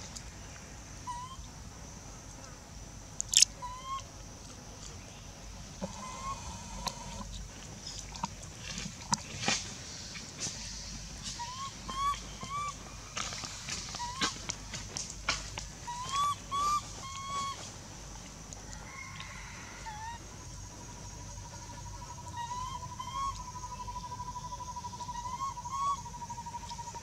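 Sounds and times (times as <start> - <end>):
baby monkey squeaky calls: 1.1 - 1.4, 3.3 - 4.0, 11.3 - 12.8, 13.9 - 14.4, 15.8 - 17.7, 22.3 - 24.1, 24.8 - 27.0.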